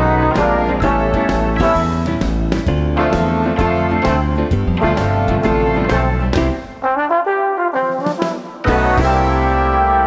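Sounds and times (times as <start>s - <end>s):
trombone phrase: 0.0s - 2.2s, 3.0s - 10.0s
bass piano and synth backing: 0.0s - 7.8s, 8.6s - 10.0s.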